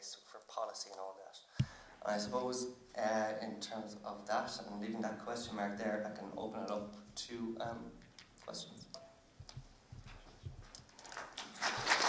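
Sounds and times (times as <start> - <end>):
faint thumps and clicks: 6.6 - 11.3
audience applause: 11.6 - 12.0.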